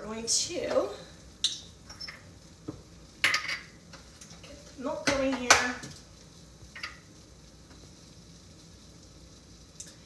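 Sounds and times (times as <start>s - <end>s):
roux sizzling in saucepan: 0.0s - 10.0s.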